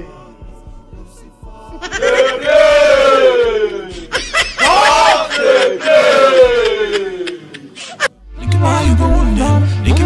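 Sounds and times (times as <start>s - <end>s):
men chanting in wails: 0.0s - 7.7s.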